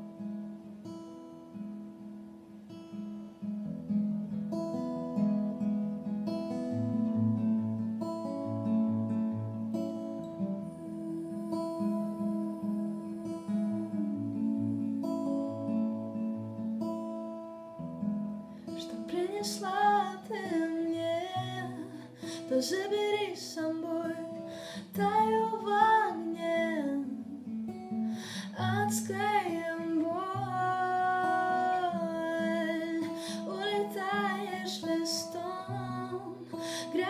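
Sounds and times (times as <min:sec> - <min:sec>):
acoustic guitar chords: 0:00.0 - 0:37.0.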